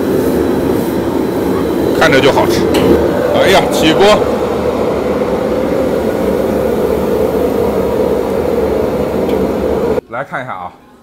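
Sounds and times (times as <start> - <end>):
gas burner roaring: 0.0 - 10.0
kitchen extractor noise: 0.0 - 10.0.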